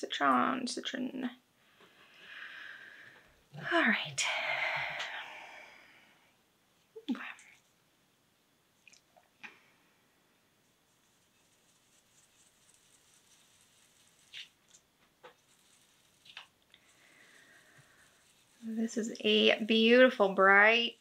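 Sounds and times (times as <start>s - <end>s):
foam tool rubbing on paper: 10.9s - 21.0s.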